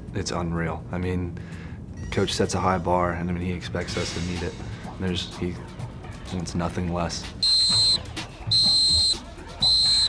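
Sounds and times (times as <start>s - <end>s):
high-pitched signal blasts: 7.4s - 10.0s.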